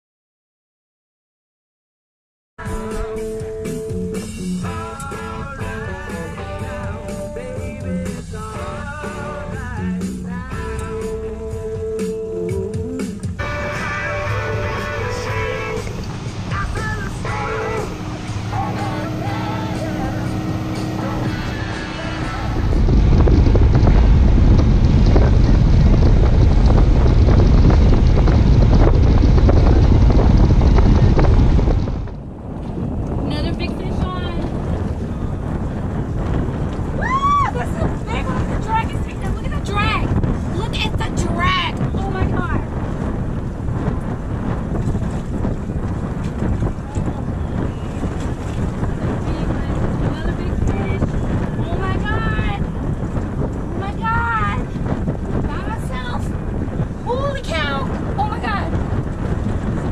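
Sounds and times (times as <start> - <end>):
guitar music: 2.6 - 11.5, 13.2 - 24.2
wind on microphone: 2.6 - 59.9.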